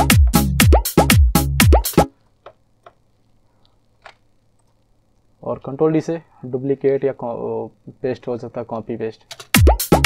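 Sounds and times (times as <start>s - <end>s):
drum machine beat: 0.0s - 2.1s, 9.4s - 10.0s.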